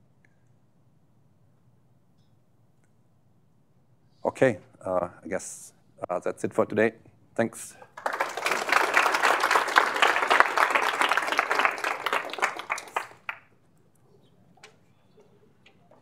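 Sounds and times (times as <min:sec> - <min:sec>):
audience applauding: 0:07.9 - 0:13.5.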